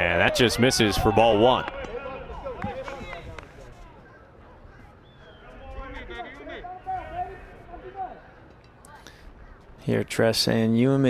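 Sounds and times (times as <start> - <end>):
distant chatter of voices: 0.0 - 10.3.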